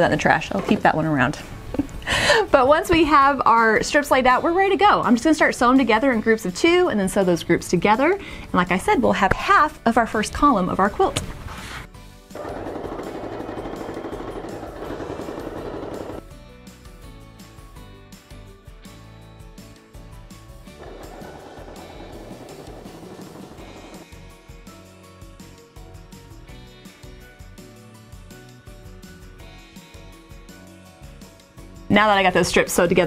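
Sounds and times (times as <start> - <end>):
background music: 0.0 - 33.0
sewing machine stitching: 12.4 - 16.2, 20.8 - 24.0.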